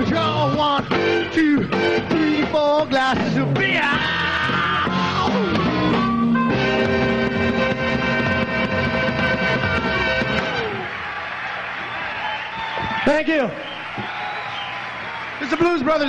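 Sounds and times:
live blues band: 0.0 - 10.9
electric guitar runs: 5.7 - 10.9.

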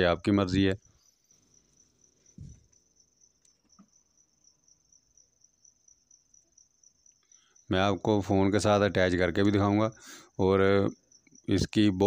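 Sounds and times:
cricket trilling: 0.0 - 12.0
soft low thump: 2.4 - 2.8.

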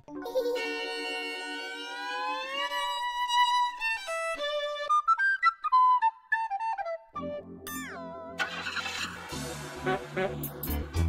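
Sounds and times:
long held note gliding upward: 0.8 - 3.8.

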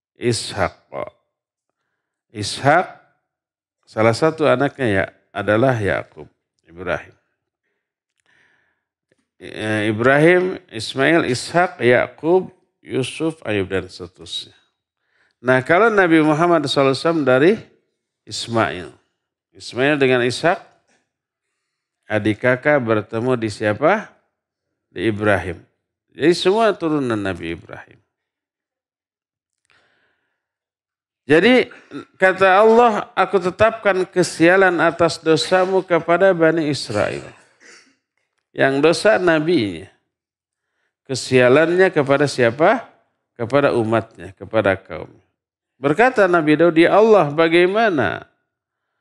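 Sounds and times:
man breathing in: 7.6 - 8.9.

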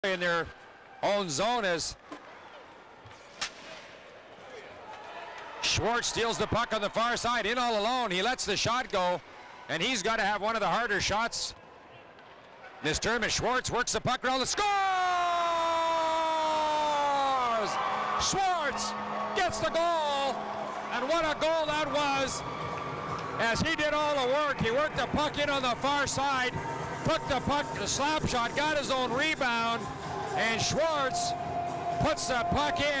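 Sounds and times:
sharp crack: 3.4 - 4.0
crowd cheering: 4.3 - 8.0, 14.6 - 33.0
announcer shouting goal call: 16.8 - 22.4, 27.1 - 31.4, 32.0 - 33.0.

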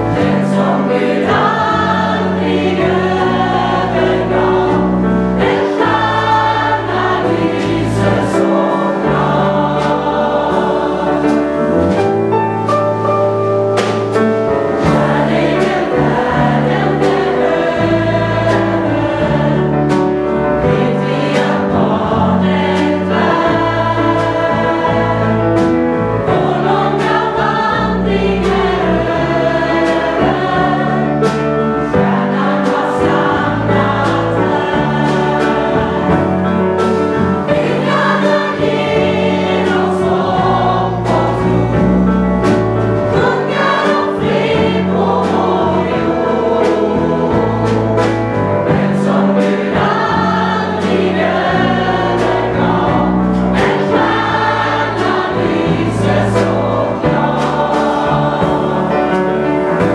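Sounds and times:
bass: 0.0 - 59.9
drum and cymbal hits: 0.0 - 59.9
gospel choir singing: 0.0 - 59.9
piano: 0.0 - 59.9.

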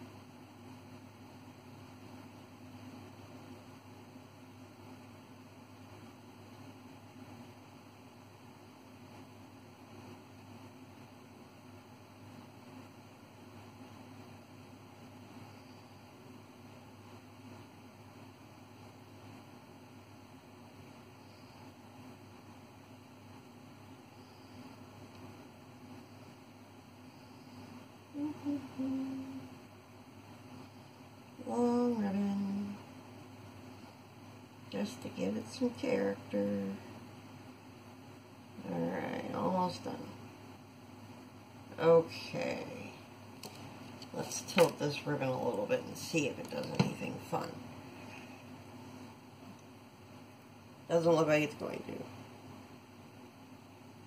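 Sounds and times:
steady low hum: 0.0 - 54.0
woman humming: 28.1 - 29.6.

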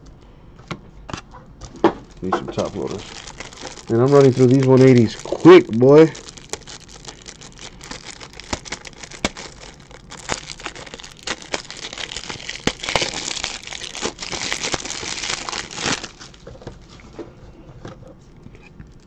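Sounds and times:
plastic packaging crinkling: 1.6 - 17.1.

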